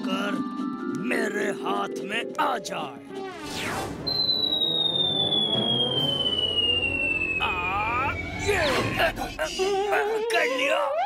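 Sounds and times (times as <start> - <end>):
falling whistle sound effect: 3.4 - 8.8.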